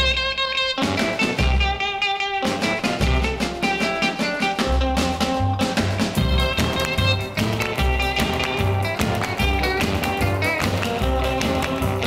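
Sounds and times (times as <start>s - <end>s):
rock and roll instrumental: 0.0s - 12.0s.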